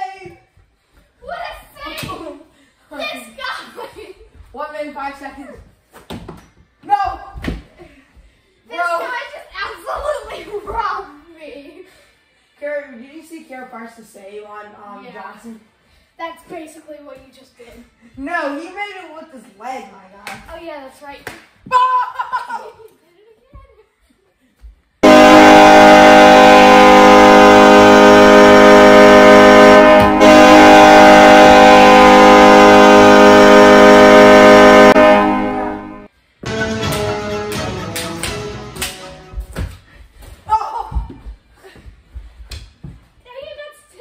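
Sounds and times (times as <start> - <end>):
goal horn blast: 25.0 - 39.2.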